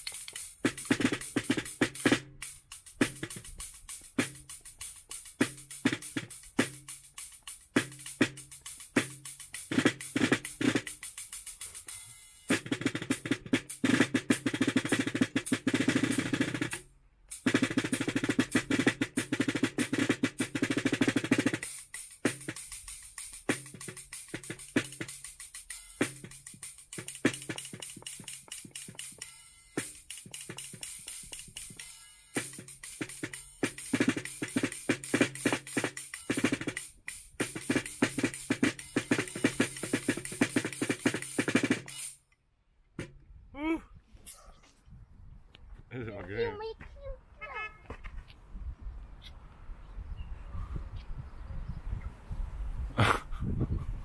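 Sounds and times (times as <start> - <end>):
snare drum rolls: 0.0 - 42.2
cymbal hits: 21.6 - 42.2.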